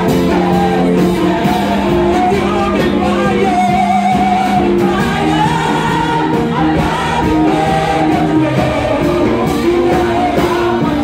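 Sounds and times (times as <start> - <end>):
congregation singing a worship song: 0.0 - 11.0
instrumental accompaniment: 0.0 - 11.0.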